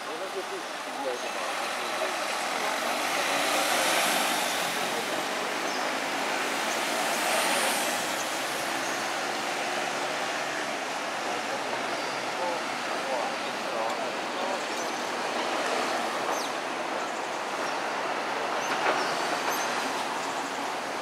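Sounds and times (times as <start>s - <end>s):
road traffic passing: 0.0s - 21.0s.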